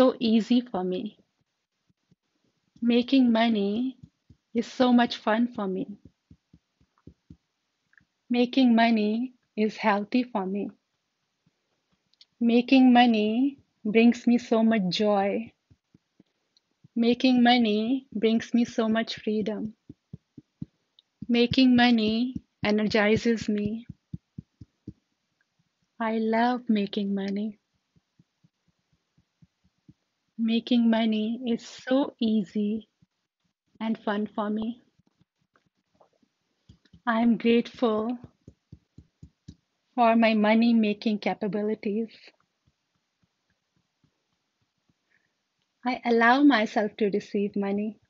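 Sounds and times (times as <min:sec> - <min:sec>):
fingertips tapping on collarbone: 0:03.6 - 0:04.8, 0:05.9 - 0:08.1, 0:15.5 - 0:17.0, 0:18.8 - 0:25.0, 0:26.9 - 0:30.1, 0:36.6 - 0:37.3, 0:38.0 - 0:39.6.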